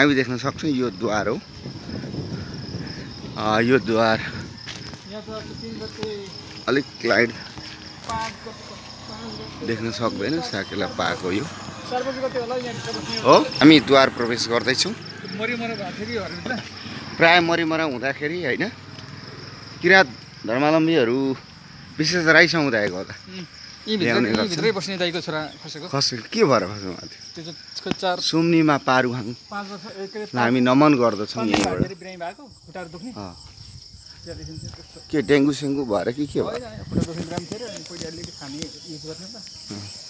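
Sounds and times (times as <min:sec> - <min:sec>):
insects chirping trill: 0:00.0 - 0:40.0
man talking: 0:03.3 - 0:18.8.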